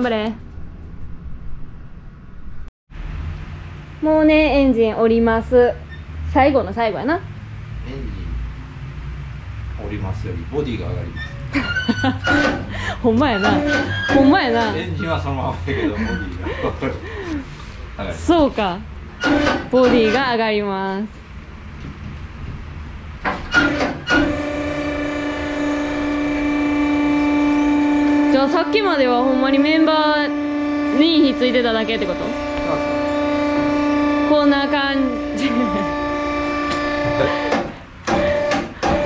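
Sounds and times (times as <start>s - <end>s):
low rumble: 0.0s - 5.8s
hydraulic pump whining: 11.0s - 17.8s, 19.1s - 20.5s, 23.2s - 39.0s
car lift motor humming: 21.3s - 39.0s.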